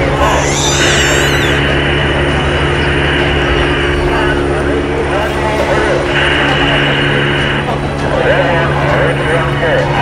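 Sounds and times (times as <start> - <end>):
helicopter engine and rotor drone: 0.0 - 10.0
people talking: 0.0 - 10.0.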